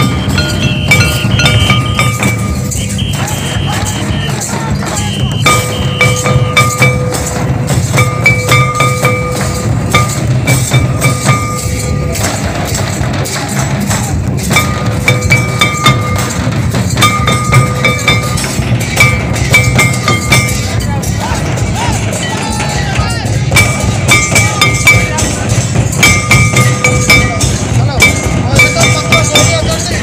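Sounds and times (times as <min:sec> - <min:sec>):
high-pitched melodic phrase: 0:00.0 - 0:12.4, 0:14.4 - 0:30.0
rapid dense drumbeats: 0:00.0 - 0:30.0.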